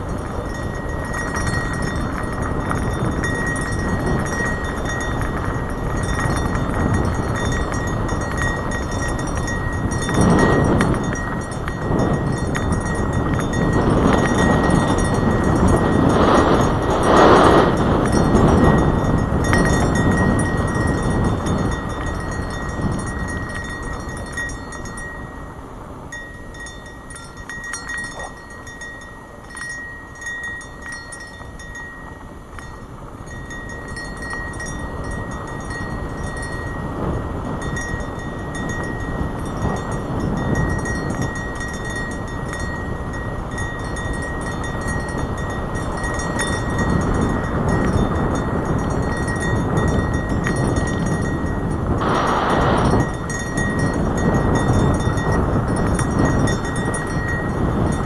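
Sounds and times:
tyres rolling on dirt trail: 0.0 - 26.5, 27.4 - 58.0
wind buffeting microphone: 0.0 - 58.0
faint high whine: 52.0 - 55.2.

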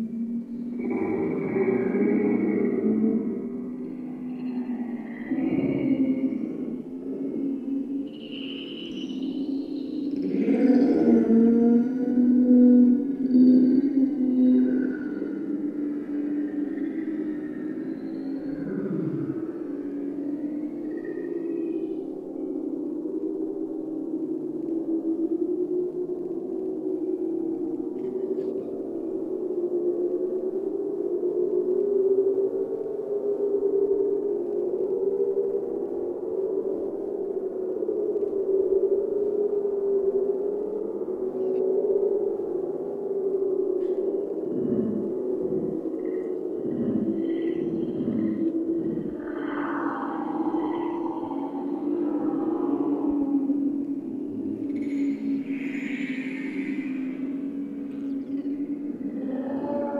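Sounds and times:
low wavering drone: 0.0 - 59.9.

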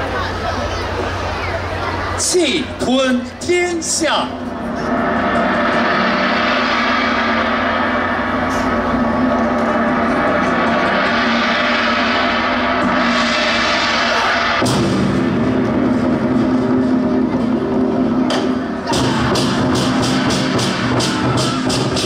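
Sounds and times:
gong-like droning: 3.2 - 21.4.

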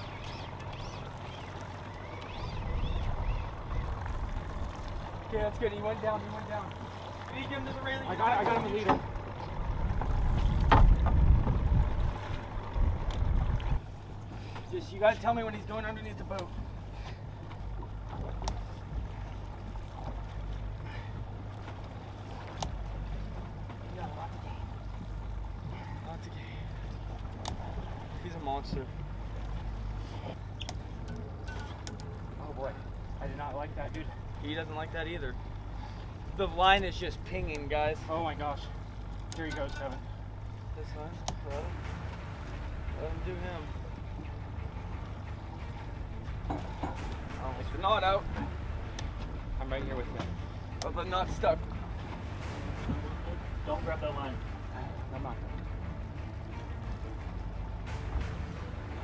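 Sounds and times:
outboard motor droning: 0.0 - 59.0
water noise: 0.0 - 59.0
wind: 0.0 - 59.0.

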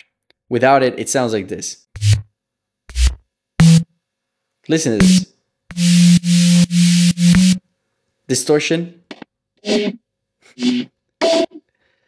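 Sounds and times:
bass synth hits: 2.9 - 3.9, 5.0 - 7.6.

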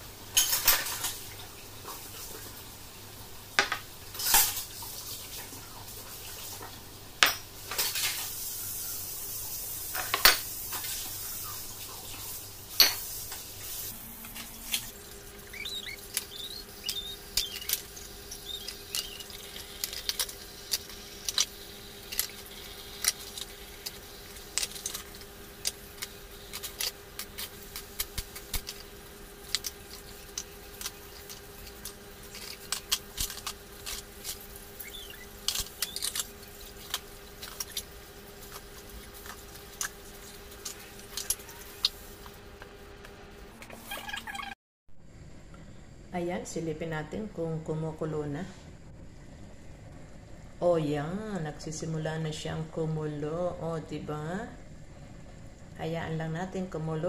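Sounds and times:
running tap: 7.8 - 42.3
dishes clinking in a sink: 9.9 - 11.0.

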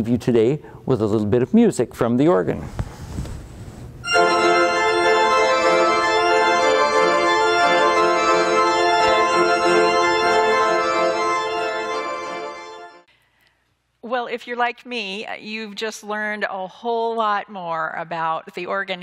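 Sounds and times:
pipe organ sustained chord: 4.0 - 13.1.

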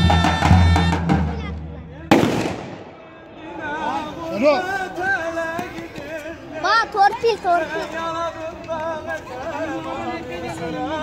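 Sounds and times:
drum and shawm music: 0.0 - 2.9
firecracker bang: 2.1 - 3.0.

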